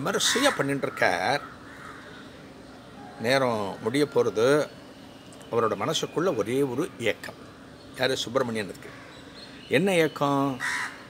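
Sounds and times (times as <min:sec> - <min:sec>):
crow cawing: 0:00.0 - 0:03.2, 0:08.7 - 0:09.5, 0:10.6 - 0:11.0
man speaking: 0:03.2 - 0:04.8, 0:05.5 - 0:07.4, 0:08.0 - 0:08.9.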